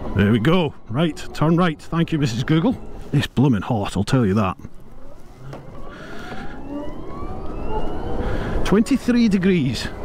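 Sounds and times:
electric scooter motor whining: 0:04.9 - 0:08.6.

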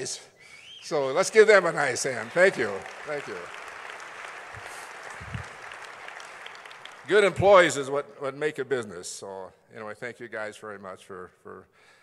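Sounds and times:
audience applauding: 0:00.9 - 0:08.0.

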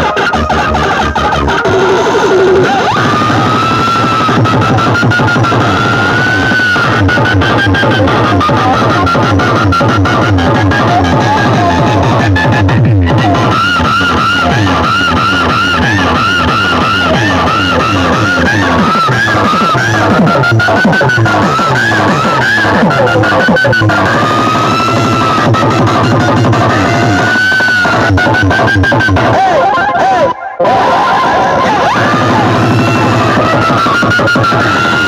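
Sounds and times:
loud electronic dance music: 0:00.0 - 0:35.0.

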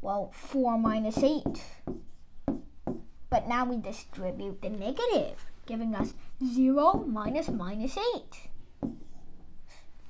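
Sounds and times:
marker writing on a board: 0:00.6 - 0:03.1, 0:05.8 - 0:08.1, 0:08.8 - 0:09.3.

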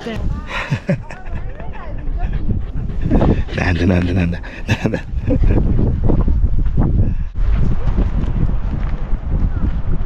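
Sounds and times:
man's low voice: 0:02.4 - 0:06.1.

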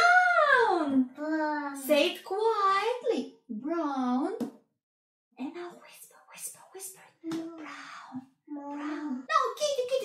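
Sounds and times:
person whispering: 0:05.5 - 0:09.3.

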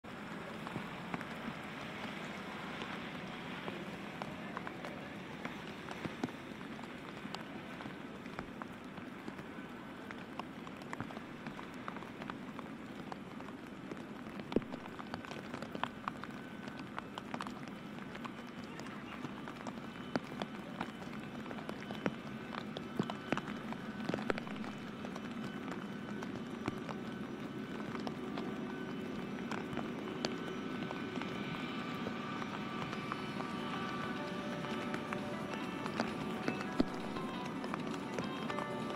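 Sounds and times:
jet engines whine and rumble: 0:00.0 - 0:38.9
steady rain hiss: 0:00.1 - 0:38.9
raindrop taps: 0:00.6 - 0:38.9.

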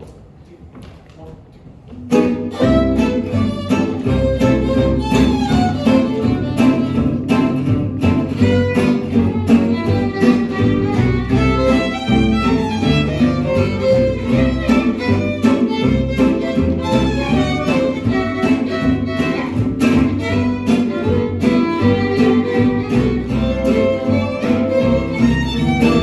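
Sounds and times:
strummed acoustic guitars: 0:02.1 - 0:26.0
upright bass: 0:02.1 - 0:26.0
violins playing melody: 0:02.1 - 0:26.0.

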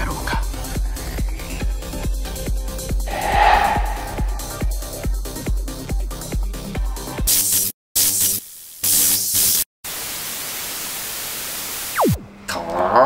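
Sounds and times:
falling pitch sweep: 0:03.1 - 0:05.0
glitchy bursts of hiss: 0:07.3 - 0:10.4.

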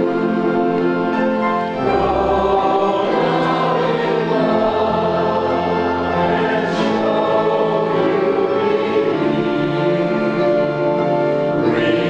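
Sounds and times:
congregation singing a hymn: 0:00.0 - 0:12.0.

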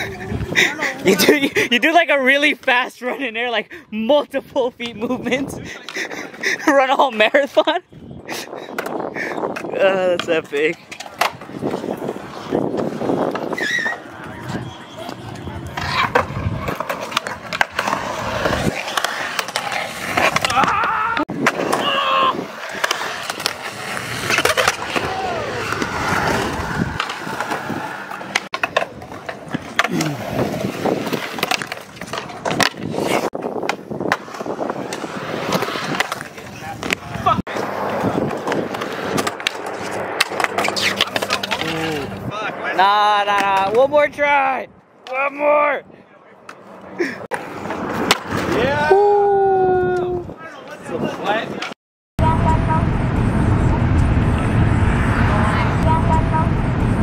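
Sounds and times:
skateboard wheels rolling on concrete: 0:00.0 - 0:51.8, 0:52.4 - 0:57.0
skateboard clacks and slaps: 0:12.7 - 0:41.9.

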